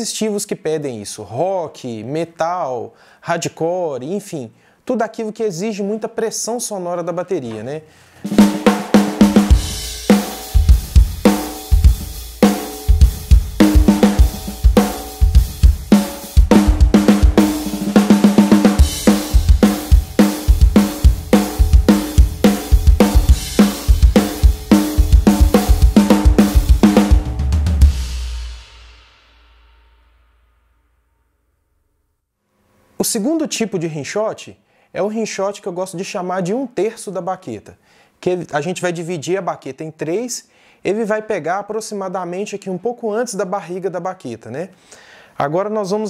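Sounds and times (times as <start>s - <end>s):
rock drum kit groove: 8.2s - 29.7s.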